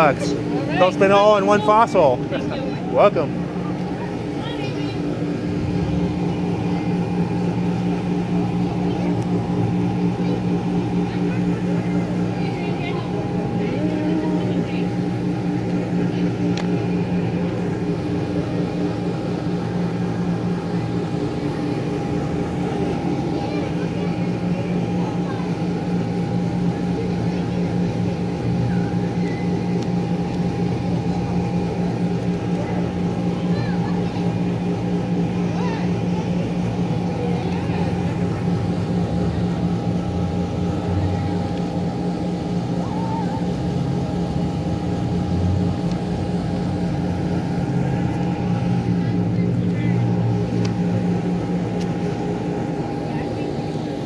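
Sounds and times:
blower fan motor hum: 0.0s - 54.0s.

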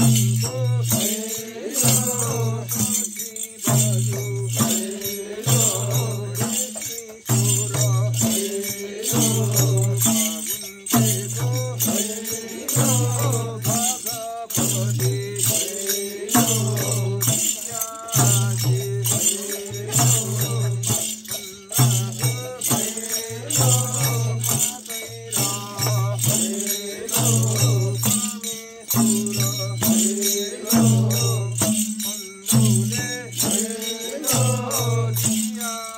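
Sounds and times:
hand drum beat: 0.0s - 13.9s, 14.6s - 35.6s
group of voices singing: 0.0s - 35.9s
light metallic jingling: 0.0s - 35.9s.

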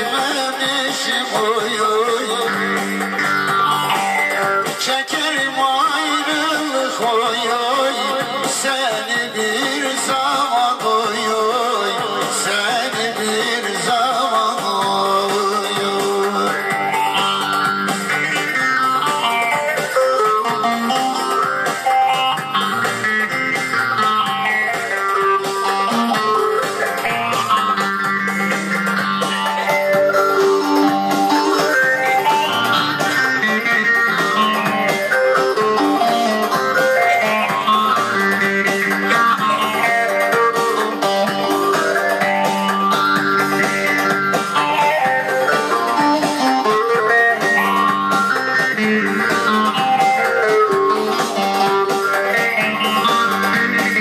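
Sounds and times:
long-necked lute plucked runs: 14.6s - 54.0s.

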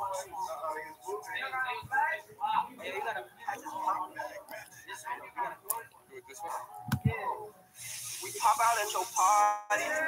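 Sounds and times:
steady high hiss: 7.6s - 10.0s.

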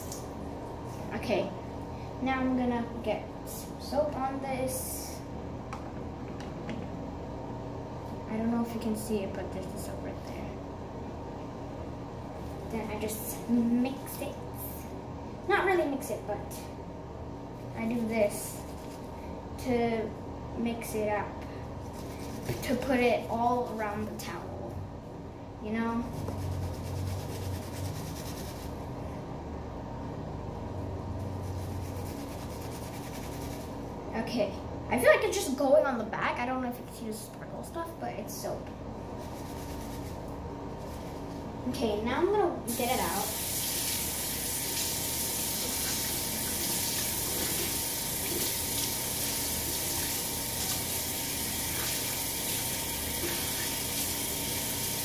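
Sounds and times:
wet cloth rubbed between hands: 21.8s - 22.7s, 31.2s - 33.8s, 39.2s - 41.5s
towel being rinsed under tap: 43.2s - 55.0s.

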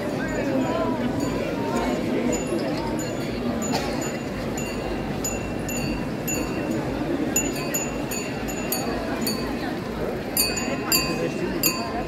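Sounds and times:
metallic chimes ringing: 0.2s - 12.0s.

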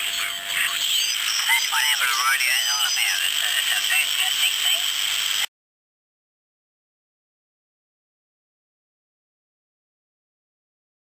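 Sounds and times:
thin radio voice: 0.0s - 5.1s
radio hiss: 0.0s - 5.5s.

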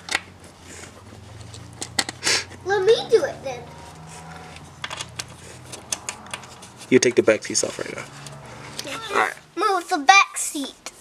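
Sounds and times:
hand tools clicking and tapping: 0.0s - 2.6s, 3.9s - 7.2s.

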